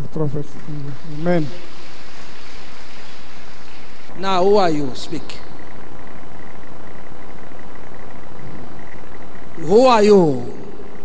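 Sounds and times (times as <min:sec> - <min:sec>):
steady rushing hiss: 0:00.0 - 0:11.0.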